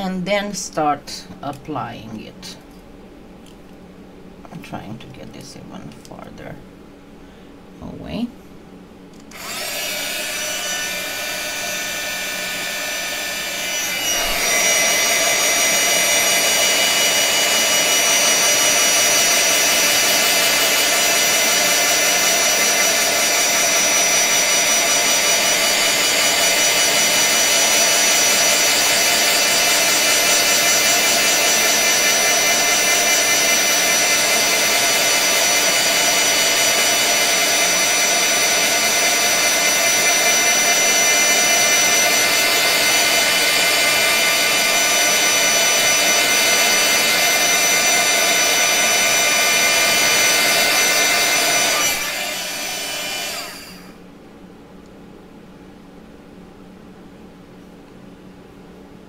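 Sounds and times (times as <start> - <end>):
heat gun blowing air: 9.2 - 54.0.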